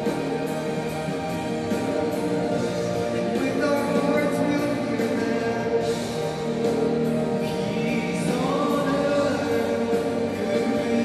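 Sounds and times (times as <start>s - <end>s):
musical accompaniment: 0.0s - 11.0s
person singing into a microphone: 3.2s - 6.0s, 7.4s - 11.0s.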